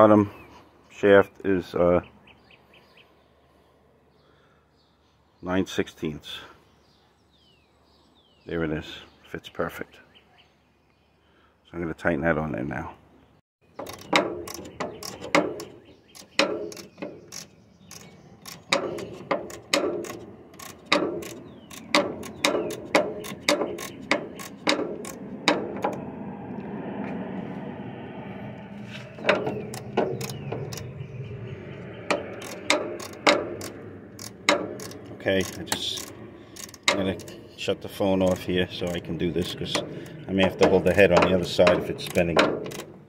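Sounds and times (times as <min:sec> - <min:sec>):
socket ratchet clicking: 0:13.8 - 0:25.9, 0:32.1 - 0:37.3.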